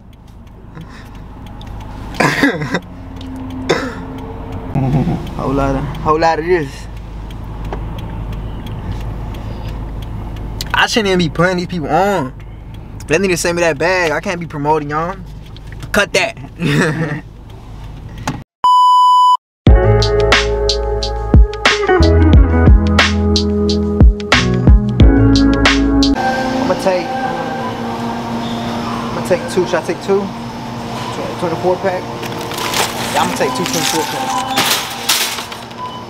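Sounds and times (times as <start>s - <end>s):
car road and engine rumble: 0.0s - 18.4s, 20.5s - 36.0s
man clearing throat or chuckling: 2.2s - 2.8s, 3.7s - 4.1s, 4.8s - 5.2s, 16.6s - 17.2s
electronic beep tone: 18.6s - 19.4s, 32.6s - 34.8s, 35.8s - 36.0s
electronic music with a beat: 19.7s - 27.8s.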